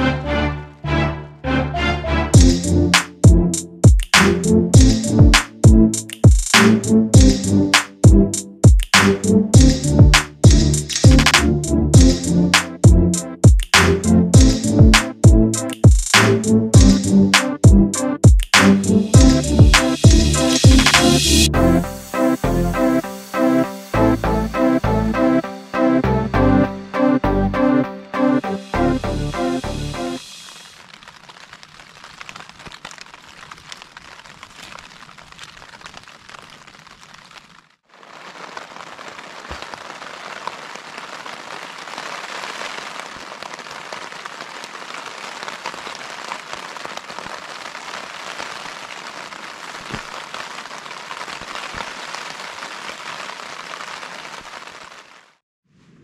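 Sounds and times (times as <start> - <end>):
music: 0.0 - 30.5
rain pattering on tent fabric: 3.8 - 11.4, 13.4 - 16.2, 30.2 - 55.4.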